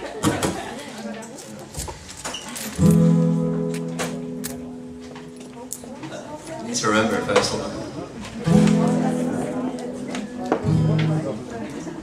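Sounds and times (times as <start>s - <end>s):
acoustic guitar chord strummed: 2.8s - 5.7s, 8.4s - 11.5s.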